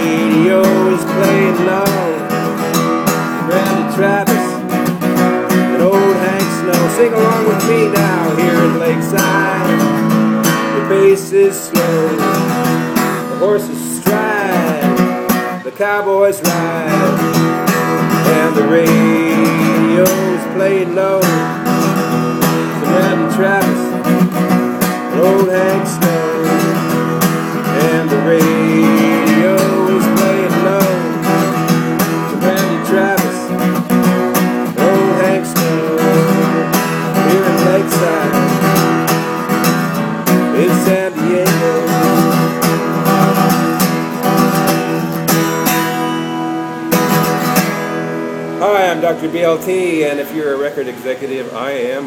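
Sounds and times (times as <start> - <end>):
acoustic guitar strummed and picked: 0.0 - 52.0.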